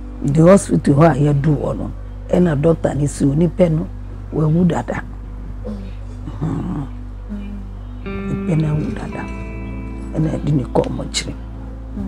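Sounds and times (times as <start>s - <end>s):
soft background music: 0.0s - 12.0s
steady low hum: 0.0s - 12.0s
wordless voice sounds: 5.6s - 7.7s.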